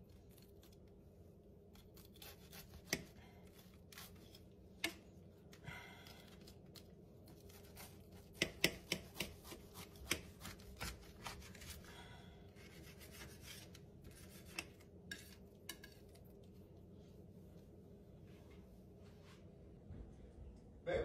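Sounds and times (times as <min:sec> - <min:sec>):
knife sawing through toasted sandwich: 0:02.0 - 0:03.2, 0:12.6 - 0:14.7
knife tapping on a board: 0:08.4 - 0:09.4.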